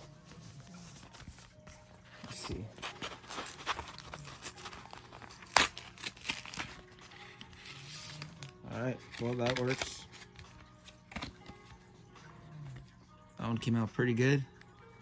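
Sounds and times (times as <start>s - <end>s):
plastic packaging crinkling: 2.8s - 10.3s.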